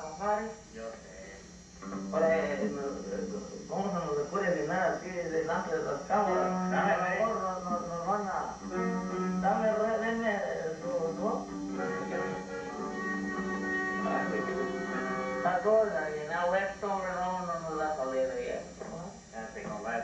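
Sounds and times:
man's voice: 2.2s - 8.6s, 9.4s - 12.9s, 14.0s - 16.0s
accordion chords: 8.6s - 9.8s, 10.7s - 15.6s.

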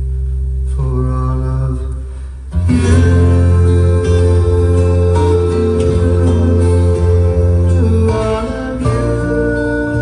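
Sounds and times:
man singing long notes: 2.8s - 10.0s.

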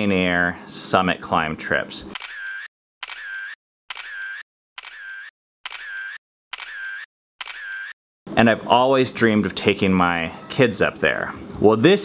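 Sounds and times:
camera shutter sound effect: 2.2s - 8.0s.

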